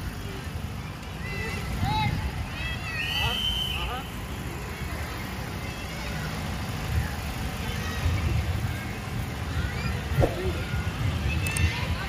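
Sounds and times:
wind on microphone: 10.2 - 10.6.

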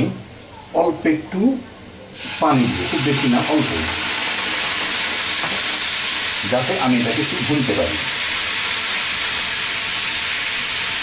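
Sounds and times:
water pouring: 2.2 - 9.2
onions sizzling in hot oil: 2.2 - 11.0.

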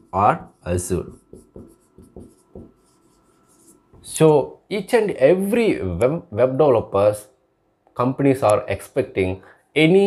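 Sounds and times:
marker scratching on whiteboard: 0.0 - 4.2.

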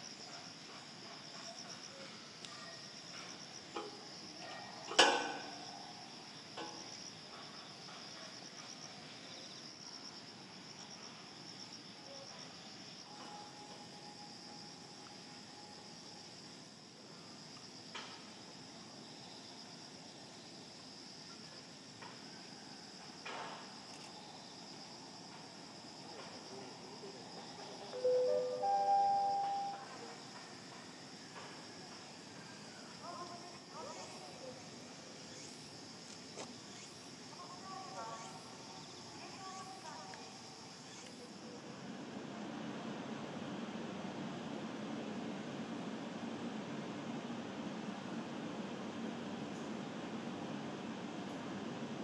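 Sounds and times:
insects chirring: 0.0 - 52.0
rising chime notes: 28.0 - 29.9.

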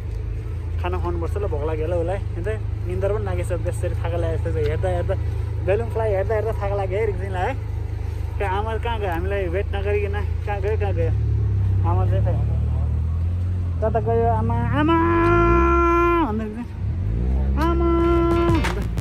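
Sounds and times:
steady low rumble: 0.0 - 19.0.

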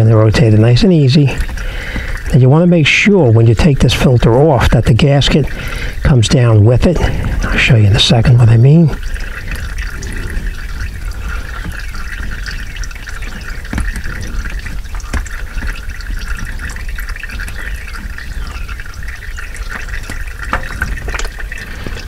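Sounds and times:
oil streaming into bucket: 0.0 - 22.0.

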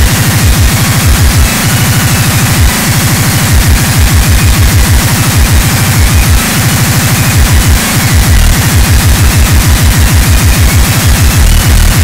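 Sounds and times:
dense wall of noise: 0.0 - 12.0
fast distorted kick drums: 0.0 - 12.0.

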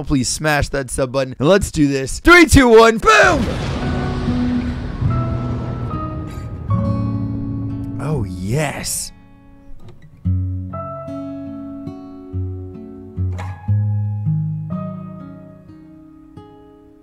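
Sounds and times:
acoustic guitar plucking: 3.4 - 17.0.

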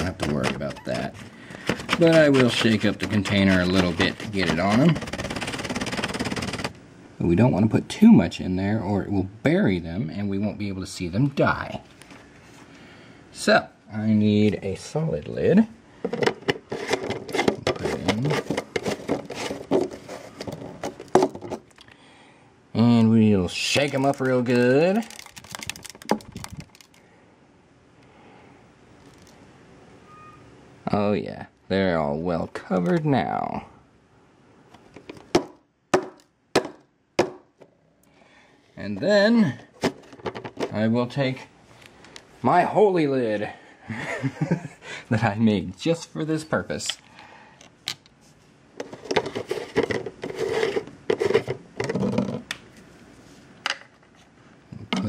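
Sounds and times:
plastic lid threads scraping: 0.0 - 6.8, 16.0 - 21.6, 48.8 - 52.4
container of fleas shaken: 23.8 - 27.0.

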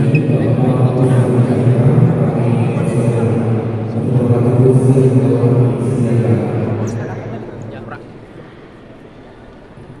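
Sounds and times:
indoor hall background noise: 0.0 - 10.0.

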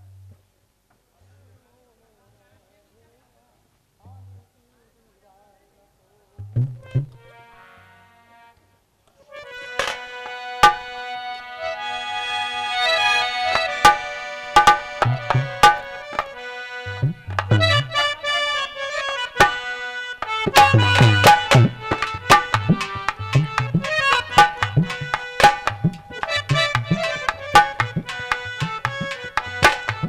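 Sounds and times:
low thumps: 6.4 - 7.3, 13.6 - 18.0, 20.5 - 30.0
harmonium chords: 6.8 - 8.6, 9.2 - 30.0
hand drum strokes: 13.5 - 16.4, 20.2 - 30.0.

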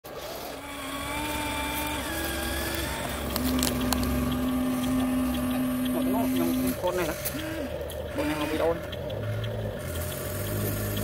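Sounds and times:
toy excavator motors whining: 0.0 - 11.0
sharp clicks: 1.3 - 11.0.

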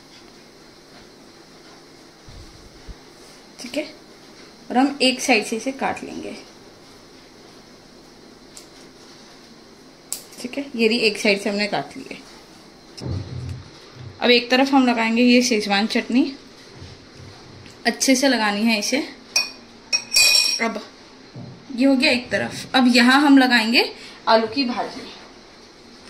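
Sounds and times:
metal spoon clinking on dish: 19.4 - 20.7.

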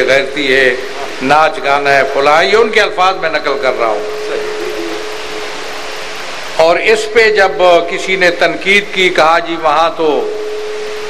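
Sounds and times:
steady background hiss: 0.0 - 11.0
thin steady tone: 0.0 - 11.0.

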